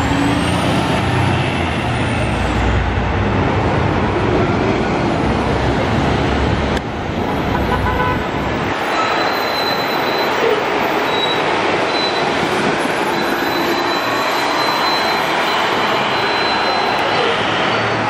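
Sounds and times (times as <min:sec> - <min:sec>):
diesel buses driving past: 0:00.0 - 0:18.0.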